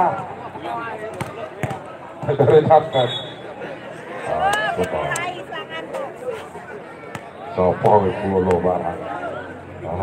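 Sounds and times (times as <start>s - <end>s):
voices of players and crowd: 0.0s - 10.0s.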